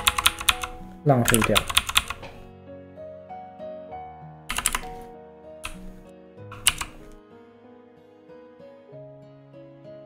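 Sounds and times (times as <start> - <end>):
keyboard keys clacking: 0.0 - 2.5, 4.5 - 7.2
soft instrumental music: 0.0 - 10.0.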